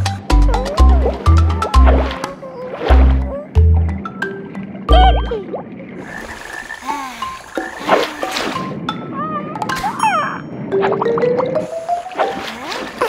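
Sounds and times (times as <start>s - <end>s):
cartoon bubble bloops and chirps: 4.9s - 5.7s.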